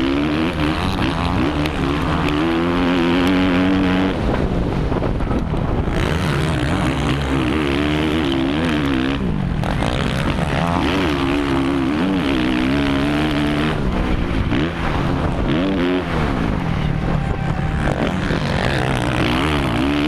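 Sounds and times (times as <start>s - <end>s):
motorbike engine revving hard: 0.0s - 20.0s.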